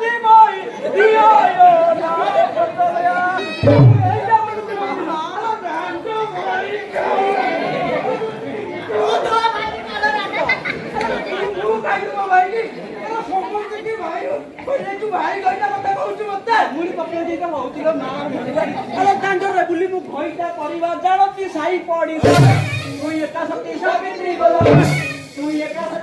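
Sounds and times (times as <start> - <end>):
low thump: 3.6 - 4.3, 22.2 - 23.2, 24.6 - 25.2.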